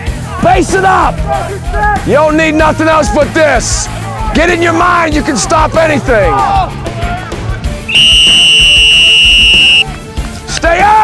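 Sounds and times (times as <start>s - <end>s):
shrill whistle blast: 7.9s - 9.9s.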